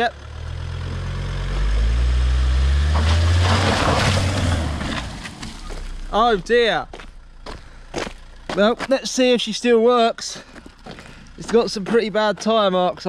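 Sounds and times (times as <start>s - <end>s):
car engine revving: 0.0s - 8.6s.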